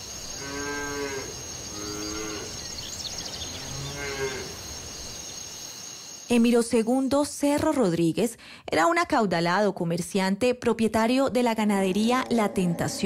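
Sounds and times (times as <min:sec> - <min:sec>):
cattle mooing: 0:03.6 - 0:04.5.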